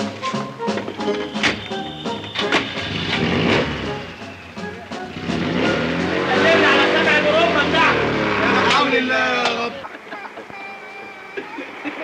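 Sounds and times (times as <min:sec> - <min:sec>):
car engine revving: 0:02.3 - 0:09.8
voices: 0:04.0 - 0:12.0.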